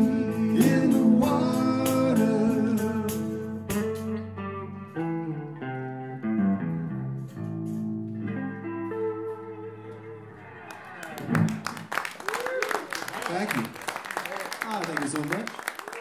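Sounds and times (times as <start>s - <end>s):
electric guitar single notes: 0.0s - 11.6s
audience clapping: 10.6s - 16.0s.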